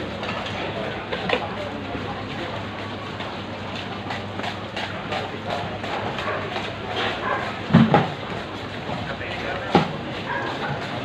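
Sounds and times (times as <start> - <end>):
low machine hum: 0.0 - 11.0
noisy wash of market crowd: 0.0 - 11.0.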